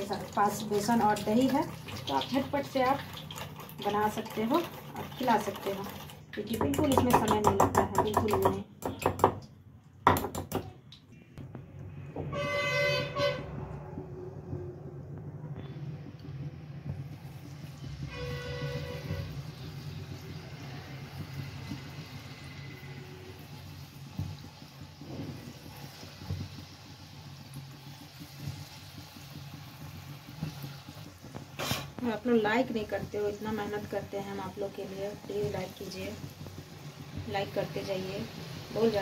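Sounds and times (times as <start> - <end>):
deep-frying sizzle with crackles: 0.0 - 39.0
vehicle horn honking: 12.2 - 13.6, 18.1 - 19.4.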